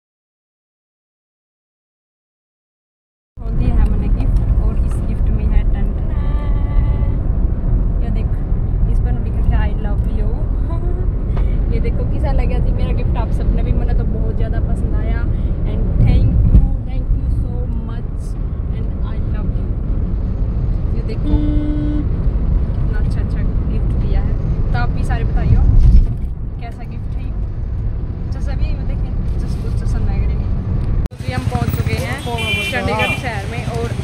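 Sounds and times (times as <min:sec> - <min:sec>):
car road and engine rumble: 0:03.4 - 0:34.0.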